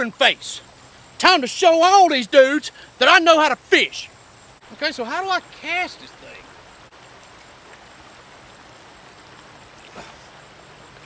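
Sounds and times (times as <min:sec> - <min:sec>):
river running over rocks: 0:00.0 - 0:11.0.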